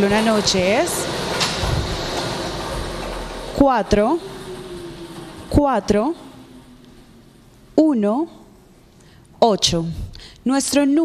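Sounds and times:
blower air rushing: 0.0s - 10.0s.

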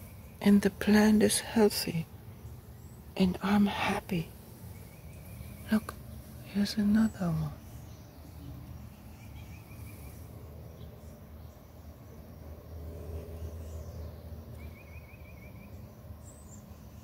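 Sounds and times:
steady low rumble: 0.0s - 14.7s.

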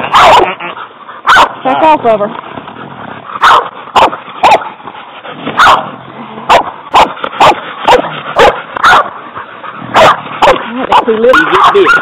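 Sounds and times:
dog barking: 0.0s - 0.6s, 1.2s - 1.6s, 3.4s - 4.7s, 5.6s - 5.9s, 6.5s - 9.2s, 9.9s - 12.0s.

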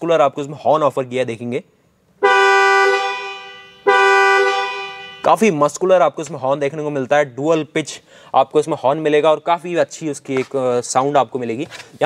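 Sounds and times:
dual-tone car horn: 2.2s - 5.4s.

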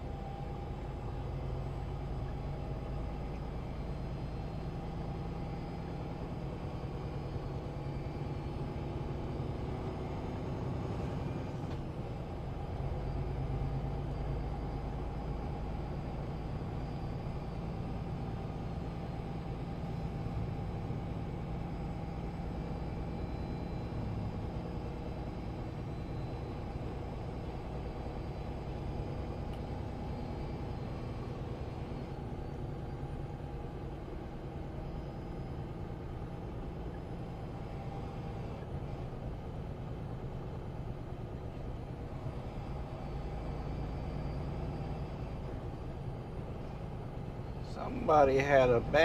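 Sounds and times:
diesel engine drone: 0.0s - 49.0s
road and tyre noise: 0.0s - 49.0s.

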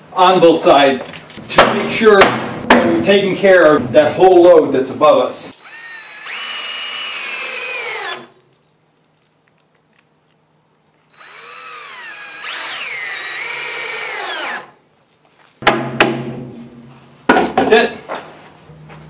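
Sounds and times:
cordless drill driving screws: 5.6s - 8.3s, 11.1s - 14.8s
sharp knock: 15.6s - 16.4s.

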